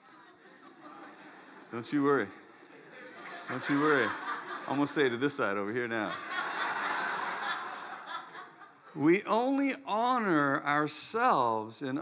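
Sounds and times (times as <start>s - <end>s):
congregation laughing: 0.3s - 9.0s.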